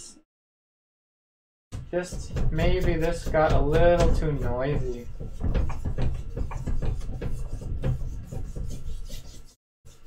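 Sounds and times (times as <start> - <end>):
paintbrush scrubbing canvas: 2.0 - 10.0.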